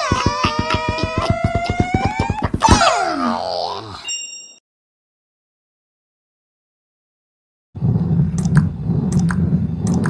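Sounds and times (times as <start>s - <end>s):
cartoon wail sliding down: 0.0s - 3.7s
high ringing chime: 4.0s - 4.6s.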